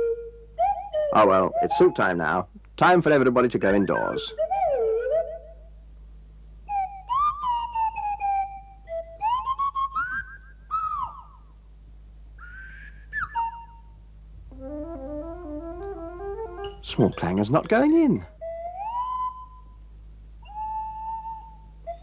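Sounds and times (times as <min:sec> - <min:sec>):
slide-whistle voices: 0:00.0 - 0:02.3, 0:03.6 - 0:05.7, 0:06.6 - 0:11.4, 0:12.4 - 0:14.0, 0:14.8 - 0:19.8, 0:20.4 - 0:22.0
light stepped tune: 0:14.4 - 0:18.8.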